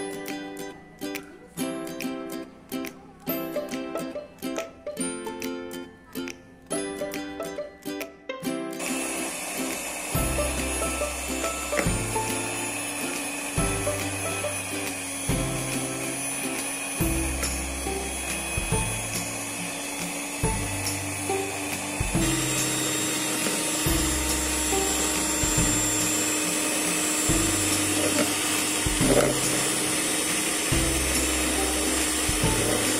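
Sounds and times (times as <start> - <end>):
electric hand mixer whipping: 8.8 - 32.9.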